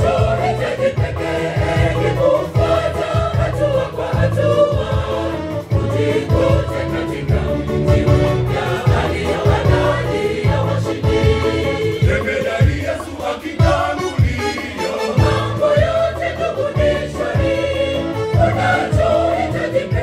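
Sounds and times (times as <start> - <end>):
choir singing gospel: 0.0 - 20.0
steady low beat: 0.0 - 20.0.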